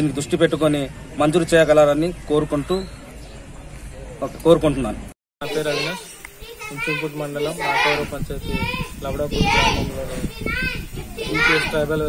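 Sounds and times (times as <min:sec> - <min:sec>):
people speaking: 0:05.5 - 0:12.0.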